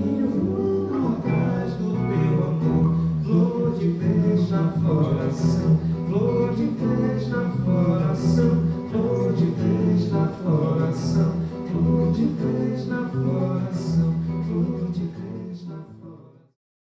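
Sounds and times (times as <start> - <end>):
live band music: 0.0 - 15.7
person singing: 0.0 - 16.6.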